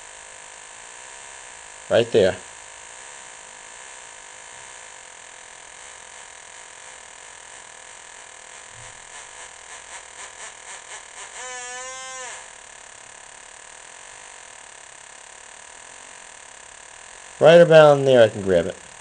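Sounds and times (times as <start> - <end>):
metal detector buzzing tone: 0.0 - 19.0.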